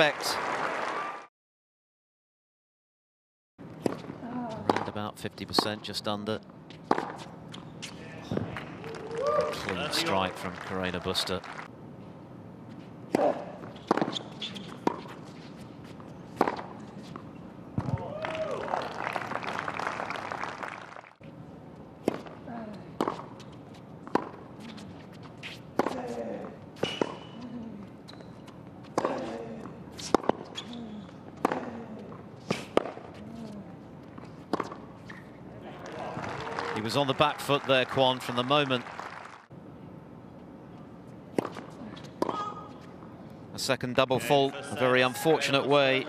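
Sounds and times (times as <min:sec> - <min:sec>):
racket hitting tennis ball: 0:03.8 - 0:04.9, 0:06.8 - 0:07.3, 0:13.1 - 0:15.6, 0:16.3 - 0:18.1, 0:22.0 - 0:22.4, 0:24.0 - 0:24.8, 0:25.4 - 0:26.2, 0:26.8 - 0:27.4, 0:28.9 - 0:30.7, 0:31.4 - 0:31.7, 0:32.4 - 0:33.2, 0:34.4 - 0:35.2, 0:41.3 - 0:42.6
crowd reaction: 0:35.6 - 0:37.9.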